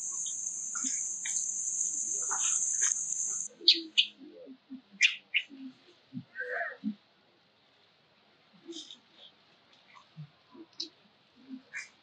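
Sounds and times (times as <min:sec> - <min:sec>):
steady high-pitched buzz: 0:00.0 - 0:03.5.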